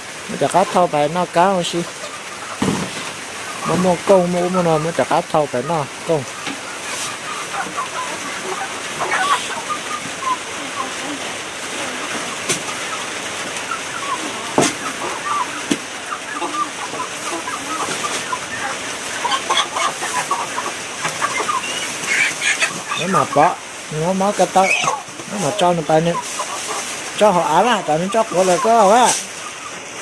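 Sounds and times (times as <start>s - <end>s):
chickens clucking: 0.0s - 30.0s
steady background hiss: 0.0s - 30.0s.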